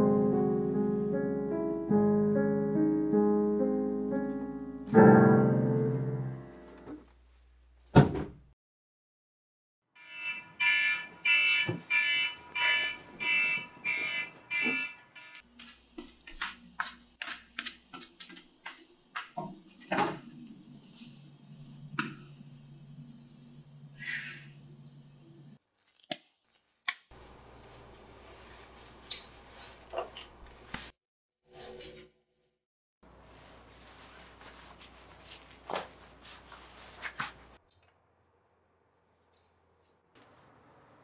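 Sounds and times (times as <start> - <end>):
electronic alarm beeping: 10.0 - 15.4.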